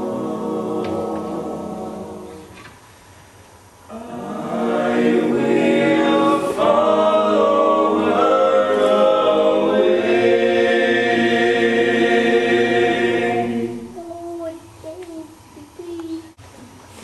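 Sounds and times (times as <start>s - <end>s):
choir singing sustained chords: 0.0s - 2.7s, 3.8s - 14.4s.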